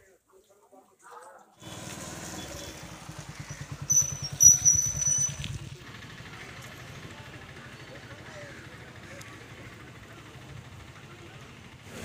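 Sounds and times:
small engine running: 1.6s - 12.0s.

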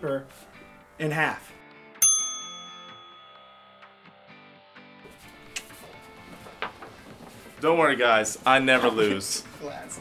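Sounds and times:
quiet background music: 0.0s - 10.0s
bell ding sound effect: 2.0s - 4.5s.

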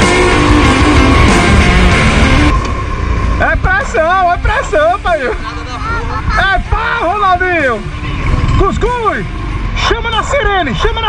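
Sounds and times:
atv engine rumble: 0.0s - 11.0s.

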